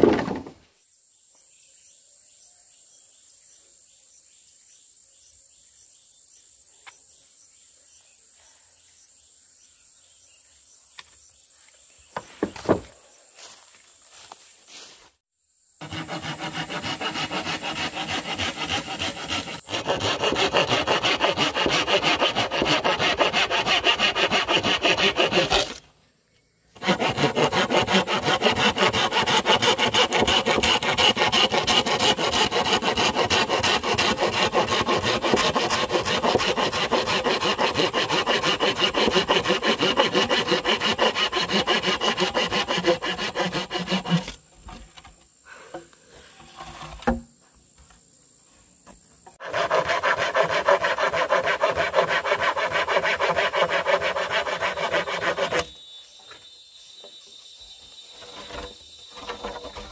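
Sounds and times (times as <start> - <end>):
hand saw cutting bamboo: 15.8 - 25.8, 26.8 - 44.4, 49.4 - 55.8, 58.1 - 59.9.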